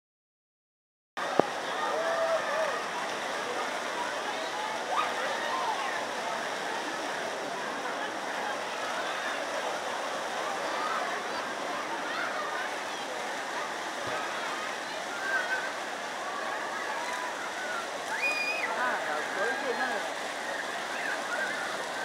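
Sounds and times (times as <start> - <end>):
faint voices: 1.2 - 22.0
running water rushing: 1.2 - 22.0.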